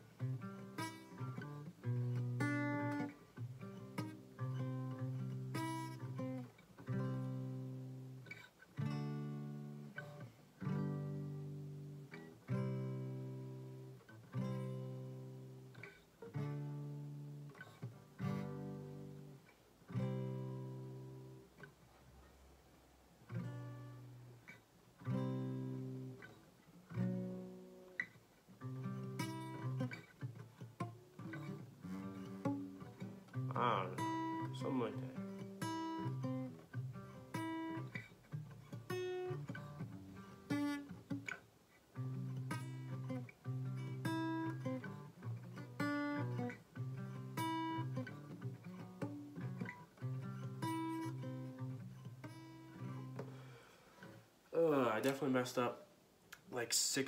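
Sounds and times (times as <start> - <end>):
acoustic guitar strumming: 0.0 - 21.8, 23.2 - 55.7.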